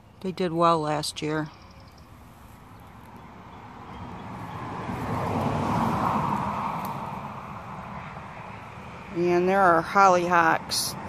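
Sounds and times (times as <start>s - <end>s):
vehicle passing by: 1.6s - 11.0s.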